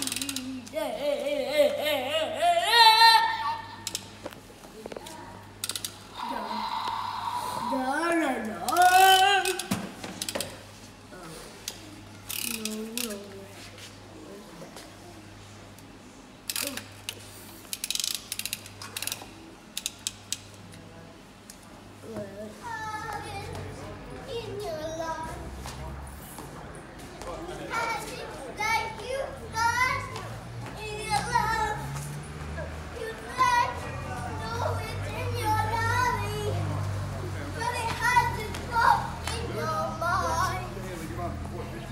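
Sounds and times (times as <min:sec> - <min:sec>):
toy truck ratcheting clicks: 0:00.0 - 0:00.6, 0:05.6 - 0:06.0, 0:08.6 - 0:10.5, 0:12.3 - 0:13.2, 0:16.5 - 0:20.5
children calling out and chattering: 0:00.0 - 0:13.6, 0:22.0 - 0:26.1, 0:27.2 - 0:41.9.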